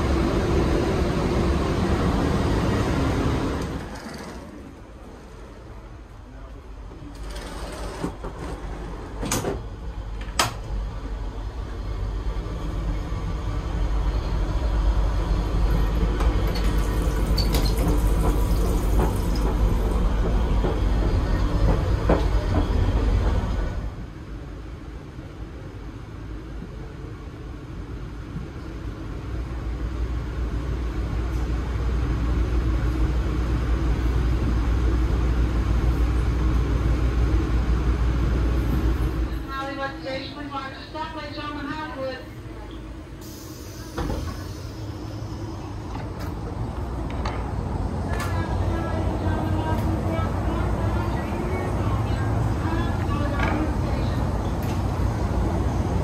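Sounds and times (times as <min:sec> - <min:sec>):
train low rumble: 0:00.0 - 0:56.0.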